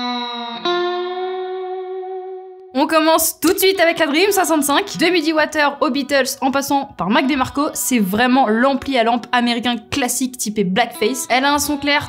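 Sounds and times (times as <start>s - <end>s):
electric guitar sustained note: 0.0s - 2.5s
woman speaking: 2.8s - 12.0s.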